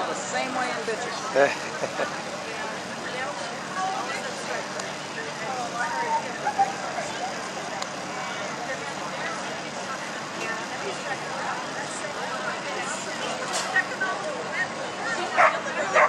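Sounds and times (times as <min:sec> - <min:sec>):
chatter of spectators: 0:00.0 - 0:16.0
outdoor background noise: 0:00.0 - 0:16.0.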